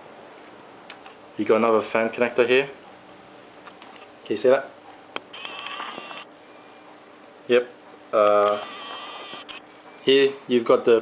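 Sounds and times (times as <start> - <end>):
camera zoom motor whirring: 5.3 - 6.3, 8.3 - 9.7.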